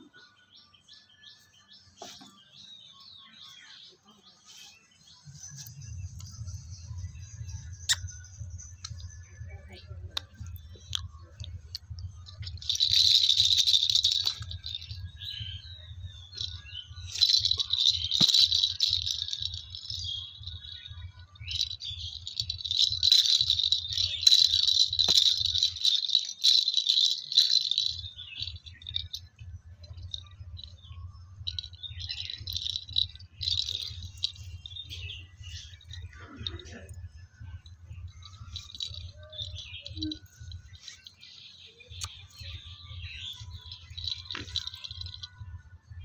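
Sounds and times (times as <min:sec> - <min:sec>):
plastic ball rattle shaken: 0:05.4 - 0:45.7.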